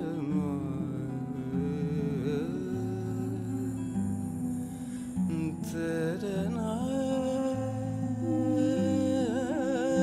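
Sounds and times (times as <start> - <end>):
classical guitar accompaniment: 0.0 - 10.0.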